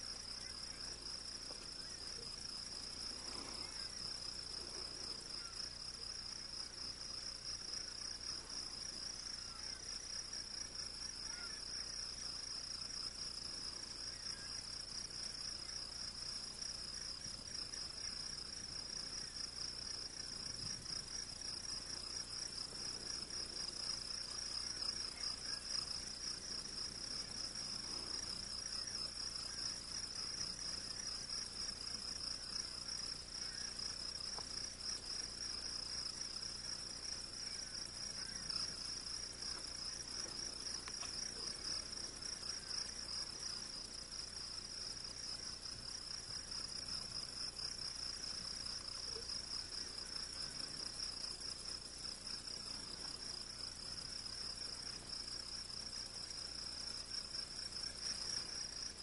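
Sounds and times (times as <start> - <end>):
crickets chirping: 0.0 - 59.0.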